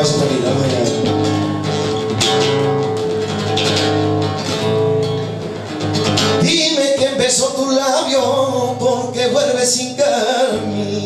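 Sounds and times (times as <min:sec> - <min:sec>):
flamenco acoustic guitar strumming: 0:00.0 - 0:11.0.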